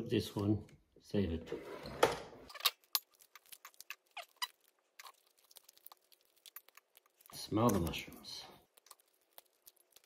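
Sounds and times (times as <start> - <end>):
dried mushrooms breaking apart: 2.8 - 10.0.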